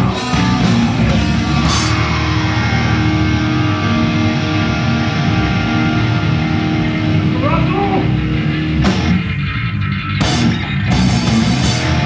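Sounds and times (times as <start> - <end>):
guitar sliding pitches: 0.0 - 12.0
metal band playing live: 0.0 - 12.0.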